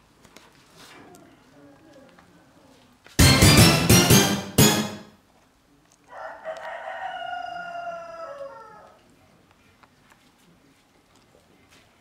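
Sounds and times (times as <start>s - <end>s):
rooster crowing: 6.1s - 9.0s.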